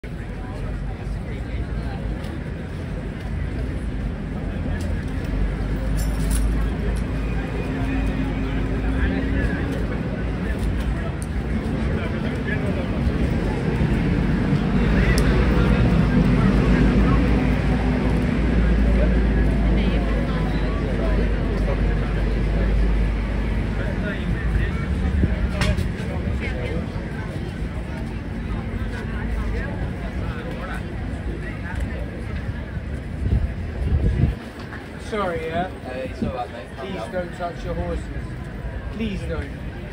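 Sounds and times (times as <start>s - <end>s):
people chattering: 0.0s - 39.9s
traffic rumble: 0.0s - 39.9s.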